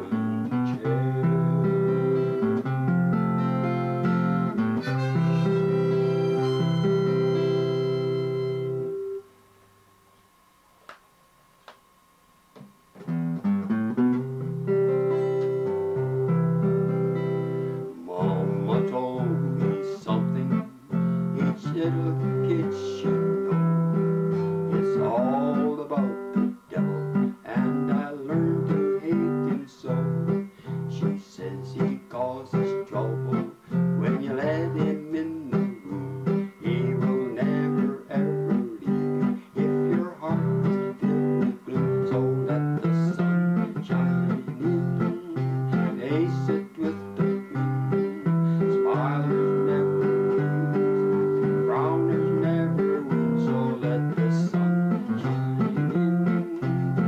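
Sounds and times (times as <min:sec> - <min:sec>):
elderly man singing: 0:00.0 - 0:01.9, 0:17.8 - 0:23.7, 0:24.3 - 0:57.0
acoustic guitar strumming: 0:00.0 - 0:09.4, 0:12.9 - 0:57.0
harmonica: 0:03.2 - 0:09.2.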